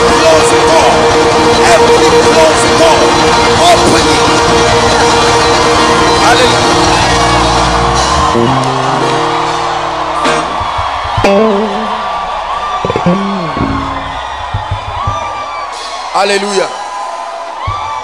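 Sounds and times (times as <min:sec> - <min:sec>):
keyboard sustained chords: 0:00.0 - 0:14.5
congregation shouting: 0:00.0 - 0:18.0
person wavering cries: 0:13.1 - 0:13.7.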